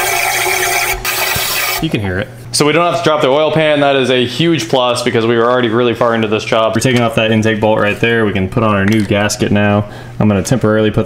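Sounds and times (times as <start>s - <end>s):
air hose hissing: 0.0s - 1.8s.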